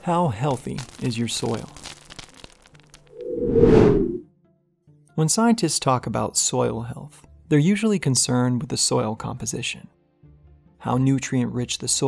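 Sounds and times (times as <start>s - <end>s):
whoosh sound effect: 3.1s - 4.2s.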